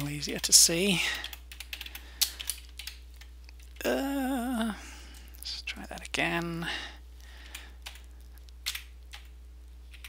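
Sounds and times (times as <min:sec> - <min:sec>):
steady low hum: 0:00.0 - 0:10.0
keyboard keys clicking: 0:01.2 - 0:03.8, 0:07.5 - 0:09.3.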